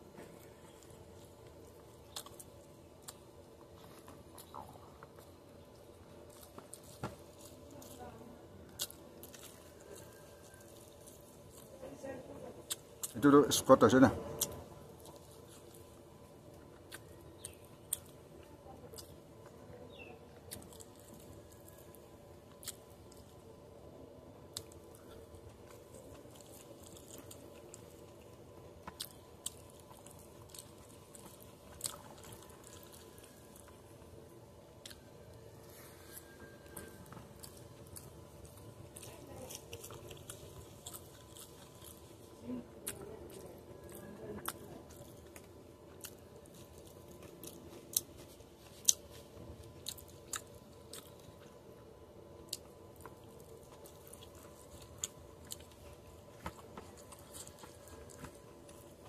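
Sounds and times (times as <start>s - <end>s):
wet chewing: 0.0s - 13.6s, 14.2s - 59.0s.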